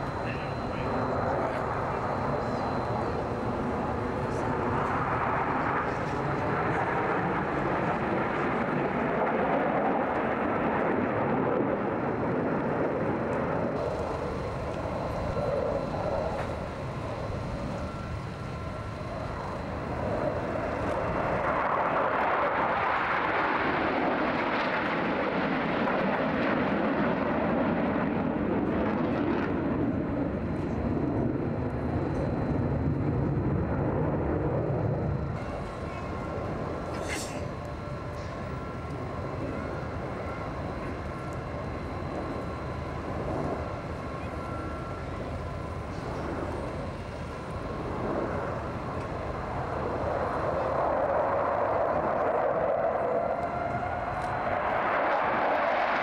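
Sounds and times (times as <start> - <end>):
jet fighters roaring past: 0.0 - 56.0.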